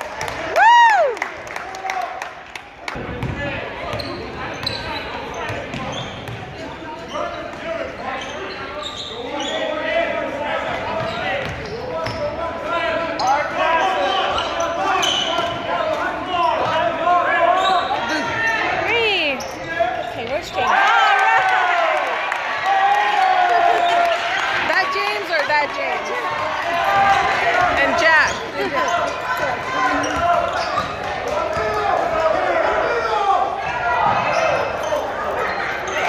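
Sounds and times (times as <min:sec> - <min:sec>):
voices calling out and chattering: 0:02.9 - 0:36.0.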